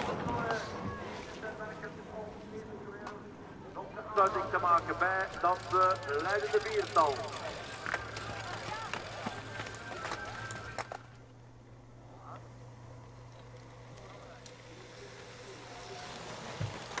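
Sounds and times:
low hum: 0:00.0 - 0:17.0
spectators shouting: 0:05.7 - 0:11.0.

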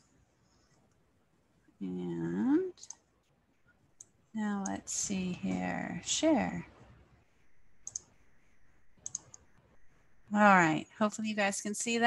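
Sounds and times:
computer mouse clicks: 0:02.8 - 0:03.0, 0:07.8 - 0:08.3, 0:09.0 - 0:09.6.

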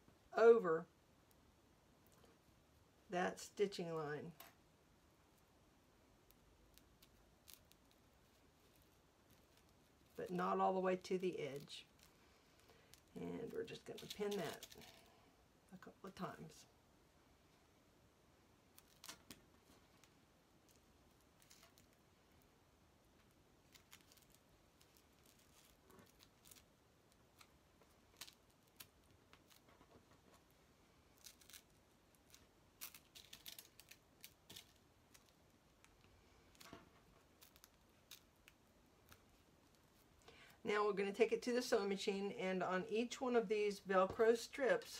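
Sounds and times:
hook-and-loop tape clicks and rustles: 0:06.2 - 0:15.2, 0:18.7 - 0:22.5, 0:23.1 - 0:40.6.

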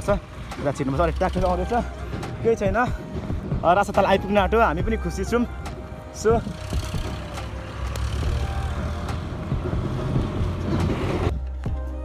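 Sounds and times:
wind buffeting microphone: 0:00.0 - 0:08.4.

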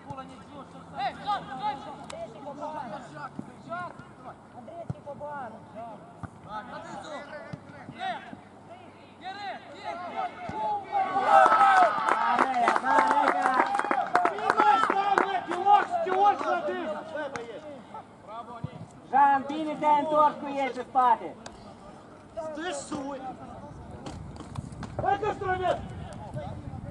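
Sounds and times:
players shouting on pitch: 0:09.2 - 0:17.2
crowd shouts and cheers: 0:09.8 - 0:16.8.

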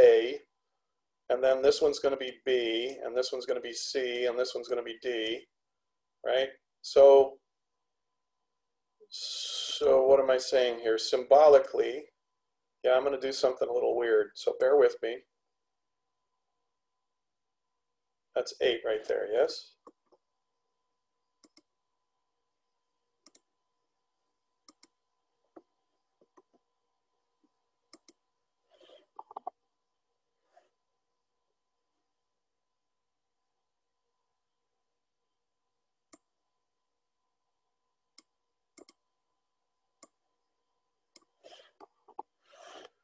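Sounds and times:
computer mouse clicks: 0:21.4 - 0:21.7, 0:23.2 - 0:23.5, 0:24.6 - 0:26.6, 0:27.9 - 0:28.2, 0:38.2 - 0:39.0, 0:41.1 - 0:42.9.

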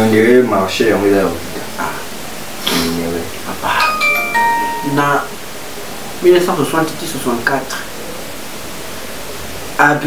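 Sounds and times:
background hiss: 0:00.6 - 0:07.9.

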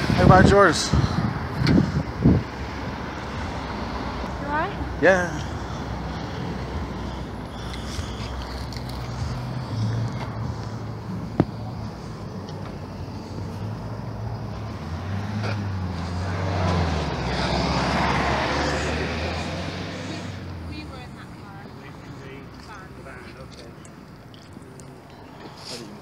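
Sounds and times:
traffic engine hum: 0:00.0 - 0:26.0
vehicle passing: 0:00.0 - 0:26.0.

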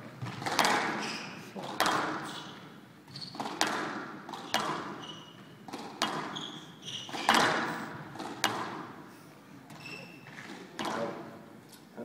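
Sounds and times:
shoes squeaking on court floor: 0:00.0 - 0:09.0, 0:09.6 - 0:11.3
racket hitting squash ball: 0:00.0 - 0:09.1, 0:09.7 - 0:11.5
ball hitting walls: 0:00.1 - 0:09.0, 0:09.7 - 0:11.4.

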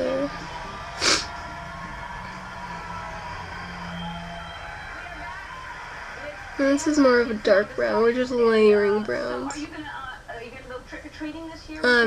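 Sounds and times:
faint broadcast voices: 0:00.0 - 0:12.0
low room hum: 0:00.0 - 0:12.0.

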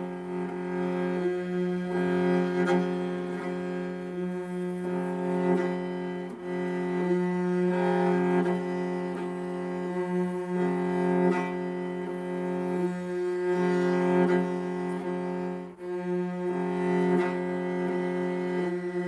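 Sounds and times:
bowed fiddle: 0:00.0 - 0:19.0.

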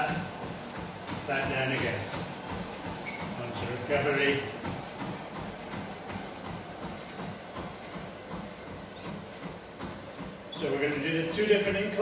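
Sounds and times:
footfalls on treadmill: 0:00.0 - 0:12.0
treadmill belt running: 0:00.0 - 0:12.0.

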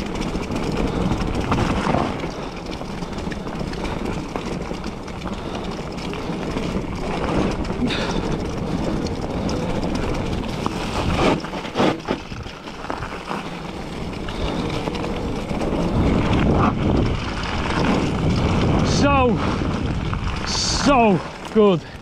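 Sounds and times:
bike tyres on dirt trail: 0:00.0 - 0:22.0
wind on microphone: 0:13.8 - 0:21.4
rider shouting: 0:20.5 - 0:21.8.

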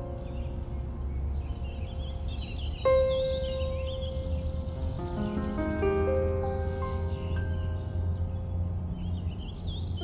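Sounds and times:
faint bird chirps: 0:00.0 - 0:10.0
soft ambient music: 0:00.0 - 0:10.0.

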